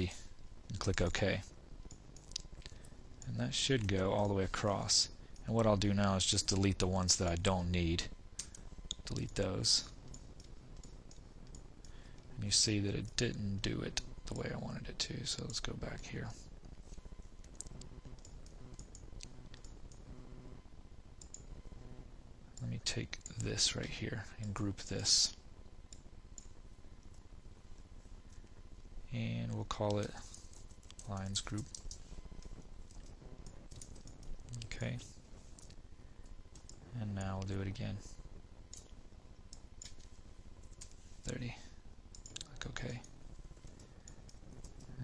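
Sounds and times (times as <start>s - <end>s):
faint steady hiss: 0.0s - 45.0s
low steady hum: 0.0s - 45.0s
computer mouse clicks: 17.4s - 20.0s, 21.2s - 21.5s.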